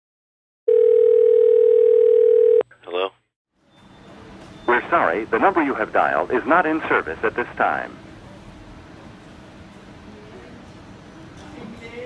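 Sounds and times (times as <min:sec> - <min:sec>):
telephone dial tone: 0:00.7 - 0:02.6.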